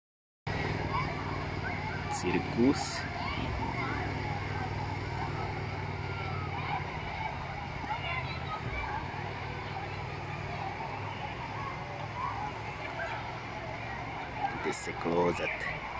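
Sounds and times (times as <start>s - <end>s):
children shouting: 0.5s - 15.9s
distant voices: 0.5s - 15.9s.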